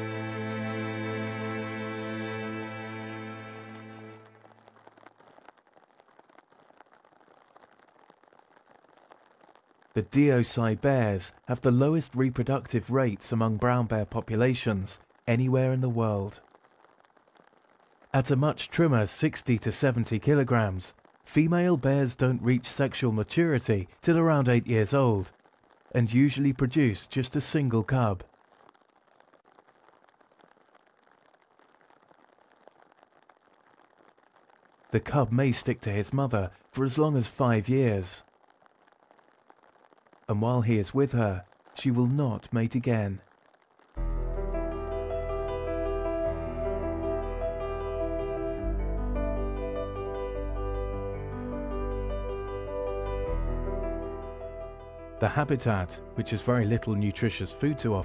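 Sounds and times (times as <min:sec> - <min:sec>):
faint hiss: 0:00.0 - 0:48.1.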